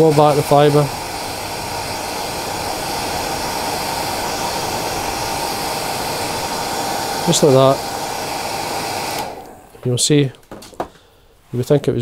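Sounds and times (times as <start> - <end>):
hair dryer running: 0.0 - 10.1.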